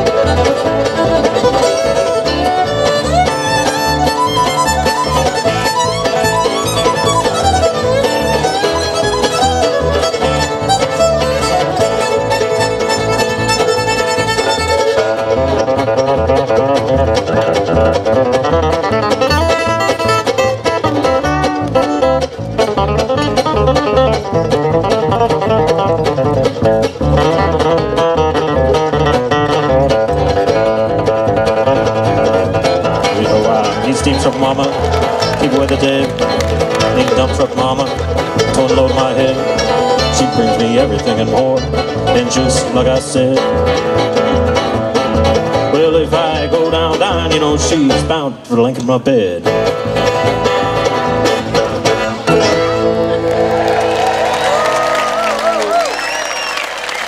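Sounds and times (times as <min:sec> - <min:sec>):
fiddle: 0:00.0 - 0:48.3, 0:49.4 - 0:57.0
mandolin: 0:00.0 - 0:55.8
upright bass: 0:00.0 - 0:56.0
acoustic guitars: 0:00.0 - 0:56.6.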